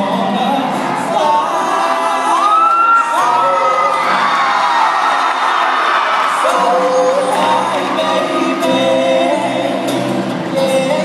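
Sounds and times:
person singing: 0.0 - 5.4, 6.3 - 11.0
audience cheering and whooping: 1.7 - 8.6
live band music: 6.2 - 11.0.

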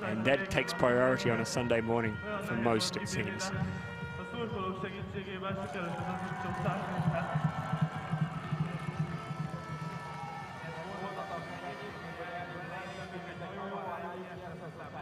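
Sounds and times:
crowd voices: 0.0 - 15.0
music over crowd: 0.0 - 15.0
spectators clapping and cheering: 5.5 - 13.6.

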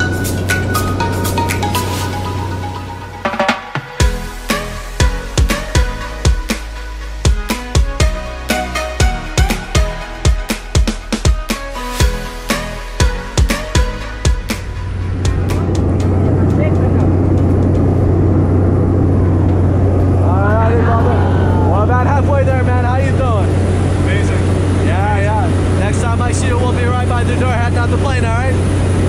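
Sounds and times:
music with drum hits: 0.0 - 17.9
propeller plane engine drone: 0.0 - 29.0
people talking and laughing: 20.1 - 23.4.

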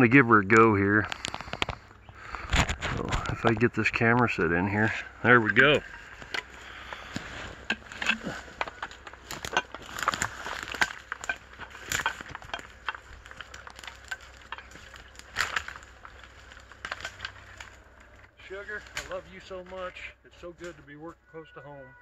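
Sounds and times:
twigs snapping underfoot: 1.0 - 3.6, 5.8 - 19.9
footsteps through undergrowth: 4.7 - 21.5.

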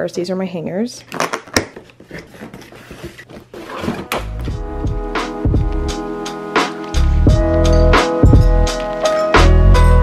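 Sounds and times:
cardboard box rustling: 2.0 - 4.5
music with steady beat: 4.2 - 10.0.

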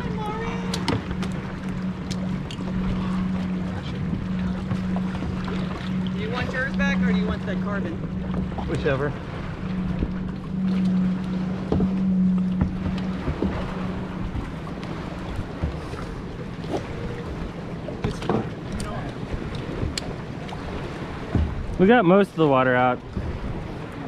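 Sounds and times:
kayaks and paddles knocking: 0.0 - 24.0
low mechanical drone: 0.0 - 24.0.

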